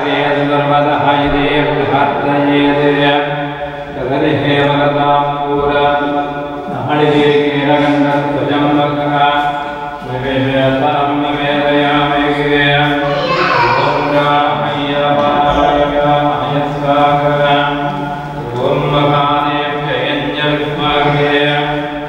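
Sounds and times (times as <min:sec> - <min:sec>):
man chanting mantras: 0:00.0 - 0:22.0.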